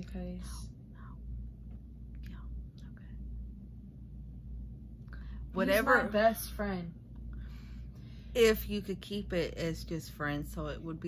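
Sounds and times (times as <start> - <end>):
woman speaking softly: 0.0 - 1.0, 5.5 - 7.0
low background hum: 0.0 - 11.0.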